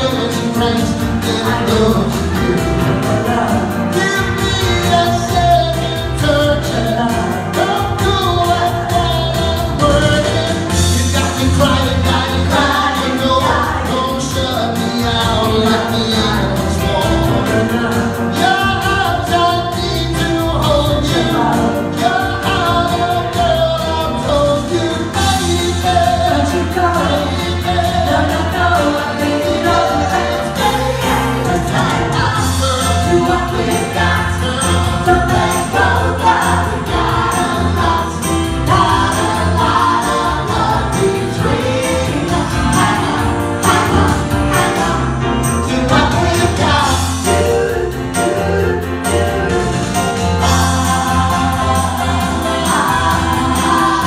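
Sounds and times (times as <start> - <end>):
amplified backing music with beat: 0.0 - 54.0
women singing through pa: 27.5 - 49.7, 50.4 - 54.0.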